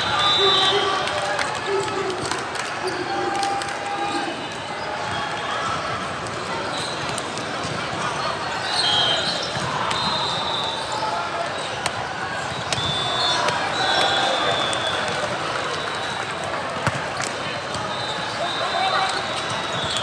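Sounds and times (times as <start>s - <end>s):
many overlapping voices: 0.0s - 20.0s
volleyballs bouncing and struck: 11.4s - 14.2s, 16.4s - 17.9s.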